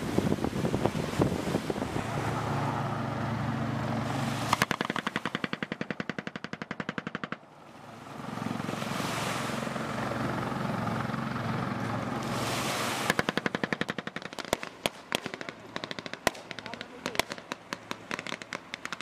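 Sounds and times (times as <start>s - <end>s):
water wash: 0.0s - 6.2s, 7.5s - 19.0s
boat engine running: 0.0s - 19.0s.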